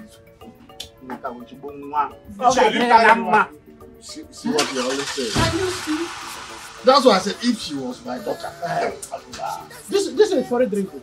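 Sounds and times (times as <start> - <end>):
film background music: 0.0 - 11.0
car engine starting and running: 4.5 - 8.0
car door shutting: 5.4 - 5.8.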